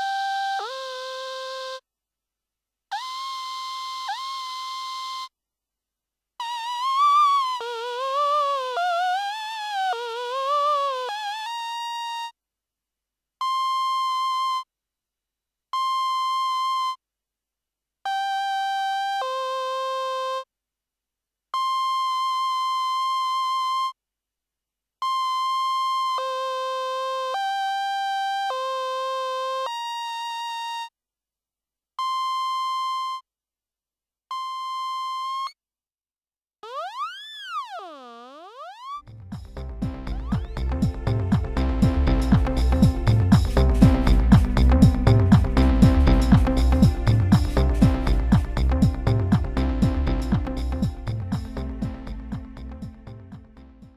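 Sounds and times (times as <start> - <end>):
buzzy synthesized vocal notes: 39.5 - 53.8.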